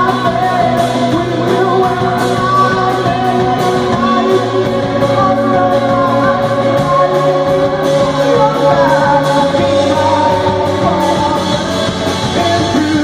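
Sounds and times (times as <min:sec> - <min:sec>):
bass notes: 0:00.0 - 0:13.0
drum kit with cymbals: 0:00.0 - 0:13.0
electric guitars: 0:00.0 - 0:13.0.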